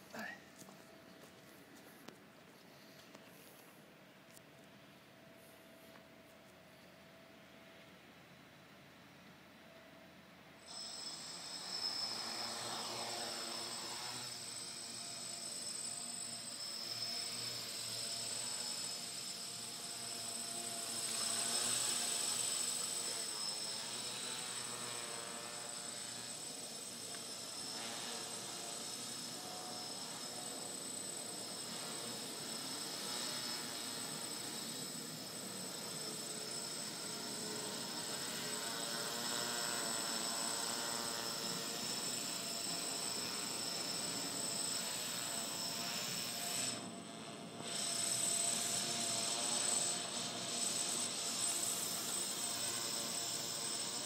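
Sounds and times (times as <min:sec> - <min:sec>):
quadcopter propellers buzzing: 0:10.6 - 0:54.0.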